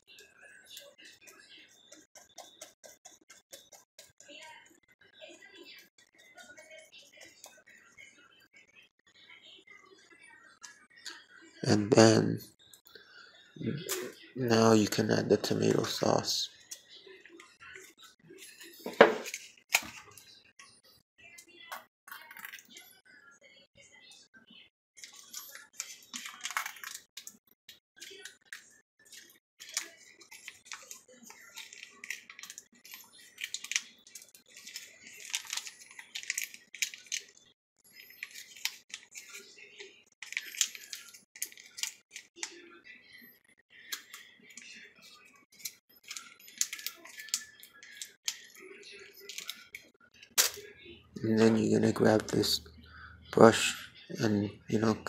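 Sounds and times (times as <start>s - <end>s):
plastic packet crinkling: 25.0s - 27.3s, 29.6s - 37.3s, 38.2s - 39.4s, 40.2s - 42.5s, 45.6s - 48.5s, 49.2s - 49.7s.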